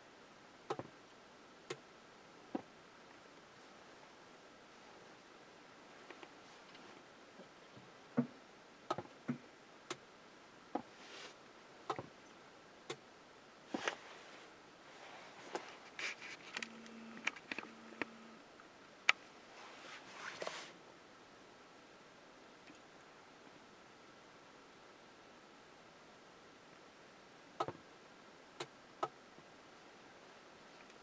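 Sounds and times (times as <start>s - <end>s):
soft rustles: 5.8s - 7.9s, 10.8s - 11.4s, 13.7s - 18.1s, 19.4s - 20.8s.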